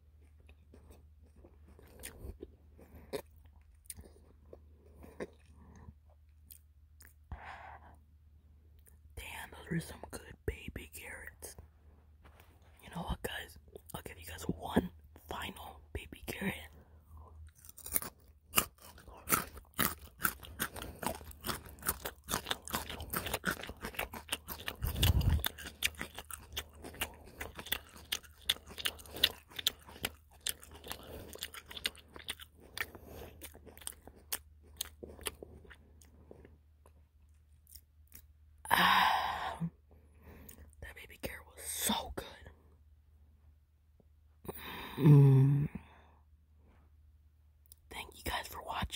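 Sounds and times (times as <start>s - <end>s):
crunchy chewing of carrots: 0.0s - 8.0s, 12.2s - 38.6s
soft mouth sounds: 18.6s - 42.5s
person murmuring: 44.9s - 45.8s.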